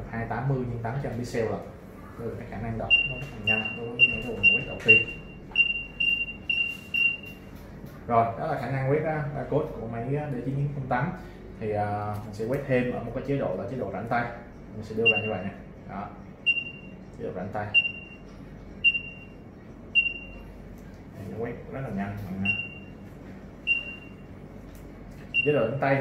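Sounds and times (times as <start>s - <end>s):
barcode scanner beeps: 2.9s - 7.5s, 15.0s - 15.6s, 16.4s - 17.1s, 17.7s - 18.2s, 18.8s - 20.6s, 22.4s - 24.4s, 25.3s - 26.0s.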